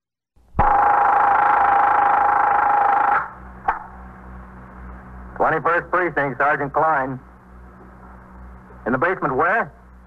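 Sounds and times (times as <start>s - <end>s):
low hum: 0.4s - 10.0s.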